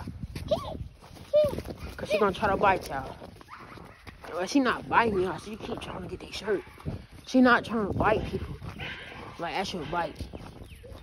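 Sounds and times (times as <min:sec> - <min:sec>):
dog barking: 0:08.7 - 0:10.1.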